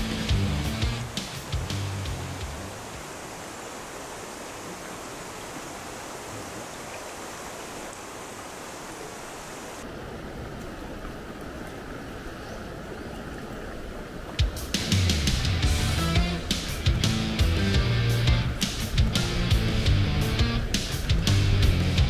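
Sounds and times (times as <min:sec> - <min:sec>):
guitar music: 0:00.0 - 0:02.8, 0:14.8 - 0:22.0
small rocky stream: 0:00.1 - 0:22.0
river rushing over rocks: 0:01.0 - 0:15.4.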